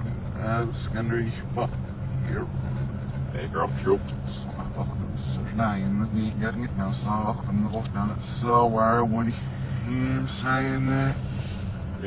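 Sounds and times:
steady low hum: 0.0s - 12.0s
man's speech played backwards: 3.4s - 11.2s.

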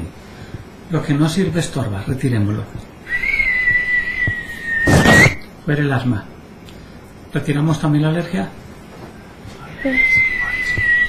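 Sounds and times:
person whistling: 3.1s - 5.4s, 9.8s - 11.0s.

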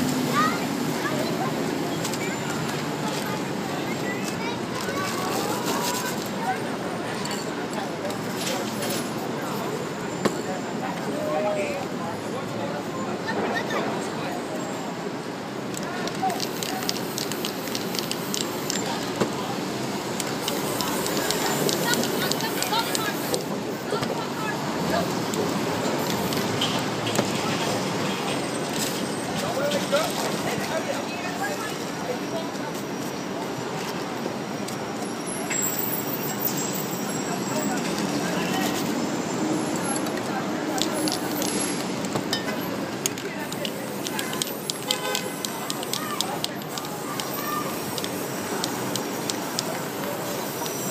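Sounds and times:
spray can hisses: 16.4s - 18.8s, 43.6s - 50.9s.

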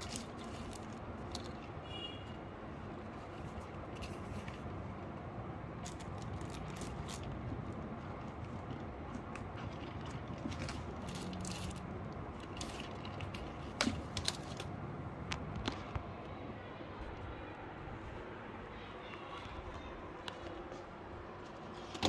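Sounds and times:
low background noise: 0.0s - 22.0s.

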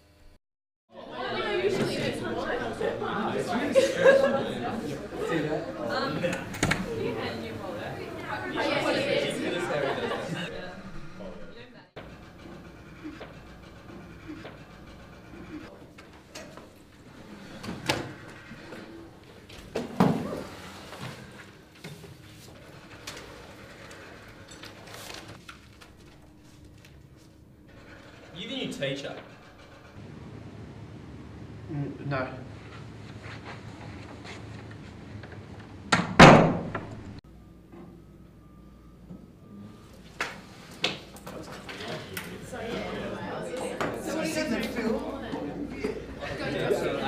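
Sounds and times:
teenagers chattering: 0.9s - 11.9s, 41.2s - 47.0s
paper and plastic folders rustling: 20.4s - 27.3s.

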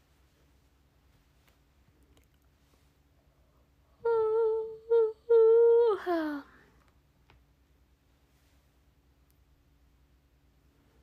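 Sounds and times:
young woman humming: 4.0s - 6.6s.

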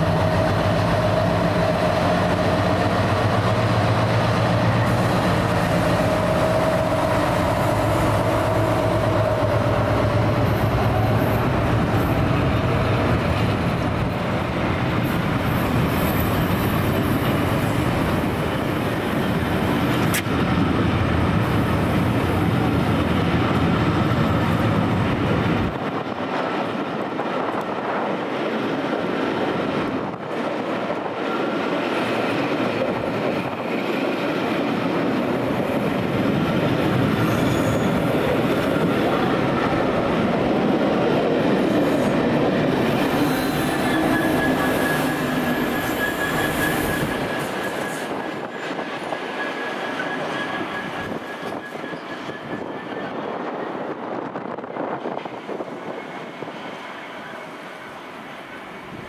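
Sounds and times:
train wheels rumbling on rails: 0.0s - 59.0s
high wheel squeal: 37.2s - 39.2s, 42.9s - 53.7s.

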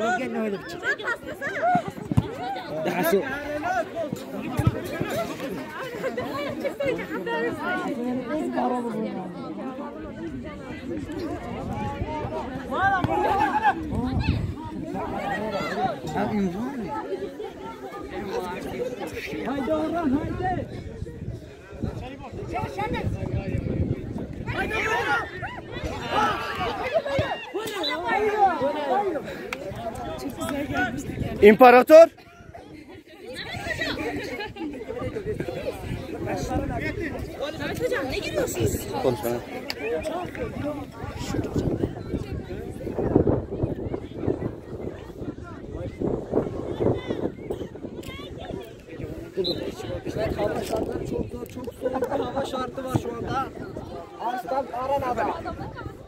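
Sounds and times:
people talking and calling out: 0.0s - 56.0s.

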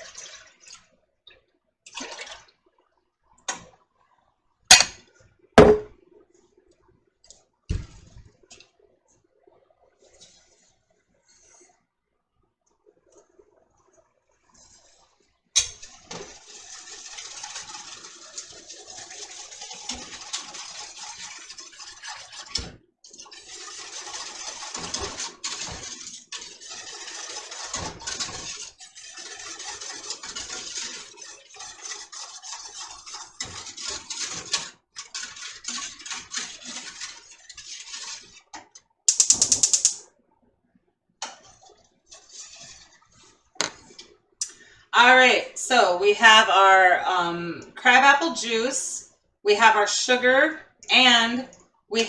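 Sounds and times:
spoon knocking on pan: 5.6s - 5.9s
spoon scraping sugar in saucepan: 15.6s - 22.5s, 23.1s - 40.0s, 41.2s - 43.8s.

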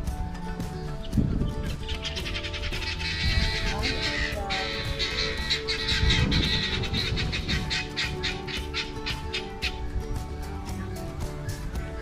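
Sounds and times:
music with quick steady beat: 0.0s - 12.0s.

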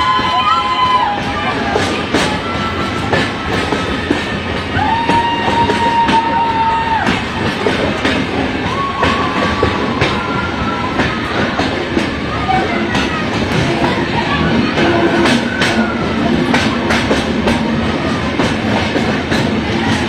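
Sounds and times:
train rushing rumble: 0.0s - 20.0s
wheels clicking over rails: 0.0s - 20.0s.

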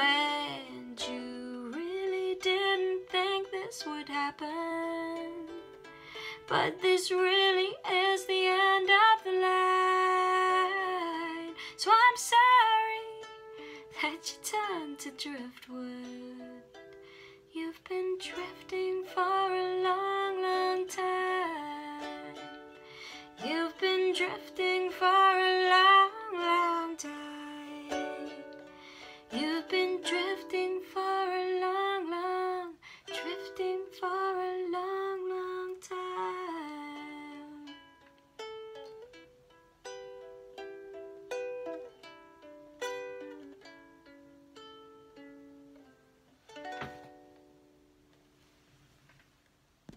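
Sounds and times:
woman's wordless singing: 0.0s - 5.6s, 6.4s - 13.3s, 13.9s - 16.7s, 17.5s - 22.6s, 23.3s - 28.6s, 29.3s - 37.7s
ukulele playing: 0.0s - 48.2s.

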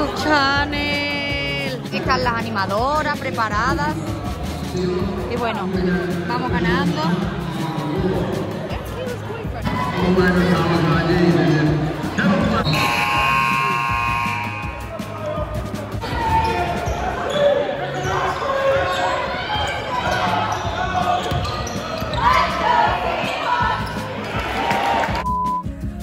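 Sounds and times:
crowd voices and chatter: 0.0s - 26.0s.

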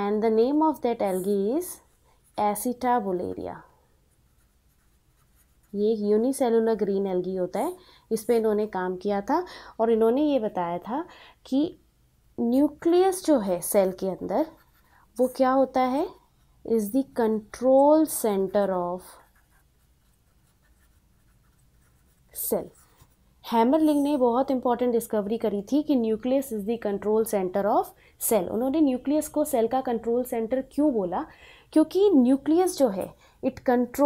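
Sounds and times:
woman speaking: 0.0s - 3.7s, 5.7s - 11.8s, 12.4s - 19.3s, 22.3s - 34.0s
marker pen scratching on paper: 1.0s - 6.3s, 13.6s - 16.6s, 17.6s - 24.2s
marker writing on paper: 4.1s - 5.9s, 18.2s - 23.2s.

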